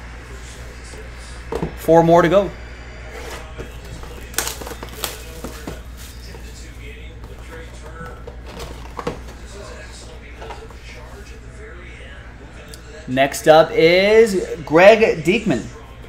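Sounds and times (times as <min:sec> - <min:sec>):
plastic wrap crinkling: 0:04.0 - 0:06.5.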